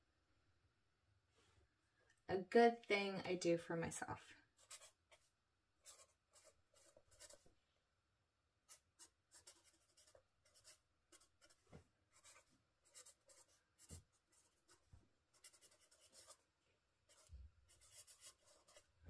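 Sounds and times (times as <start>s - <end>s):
marker pen scratching paper: 4.6s - 7.5s, 8.7s - 16.5s, 17.1s - 19.0s.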